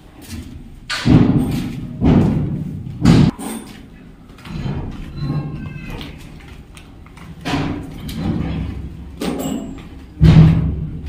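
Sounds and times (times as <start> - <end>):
footsteps on concrete floor: 0.0 - 11.0.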